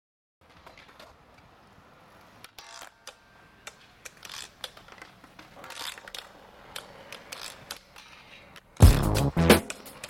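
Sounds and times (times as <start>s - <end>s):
skateboard clicks: 0.4s - 8.8s, 9.6s - 10.0s
skateboard scraping on concrete: 3.8s - 10.0s.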